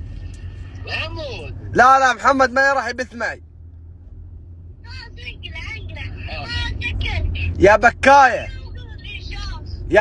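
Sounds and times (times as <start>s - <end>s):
low rumble of car cabin: 0.0s - 10.0s.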